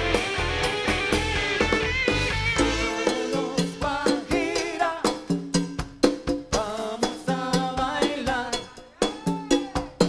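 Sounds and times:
congas and timbales: 0:00.0 - 0:10.0
latin rock band playing: 0:00.0 - 0:10.0.

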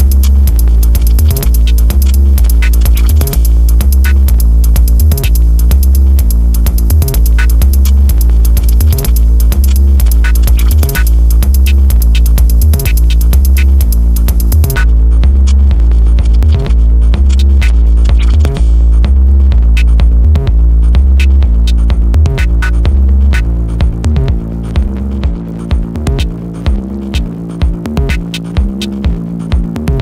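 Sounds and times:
sharp percussion hits: 0:00.0 - 0:28.8
droning bassline: 0:00.0 - 0:30.0
fast high ticking: 0:00.0 - 0:30.0.

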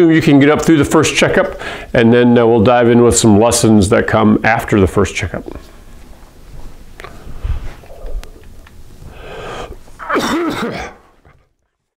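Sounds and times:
man clearing his throat: 0:10.0 - 0:11.2.

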